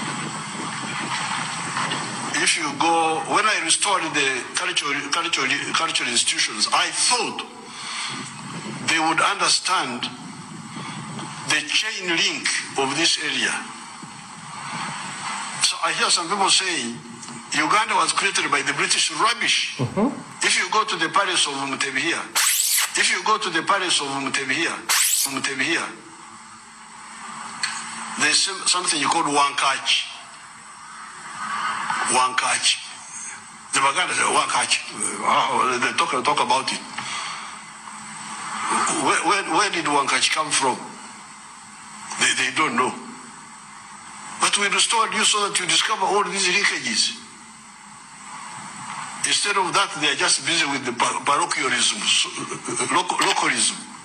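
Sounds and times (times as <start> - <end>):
background hiss: 24.9 - 25.5.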